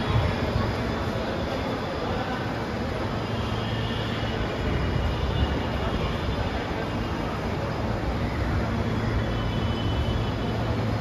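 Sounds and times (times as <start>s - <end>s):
train running with low rumble: 0.0s - 11.0s.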